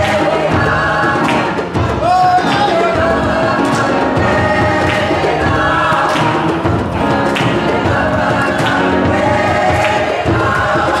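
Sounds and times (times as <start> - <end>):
group singing in harmony: 0.0 - 11.0
sharp percussive beat: 0.0 - 11.0.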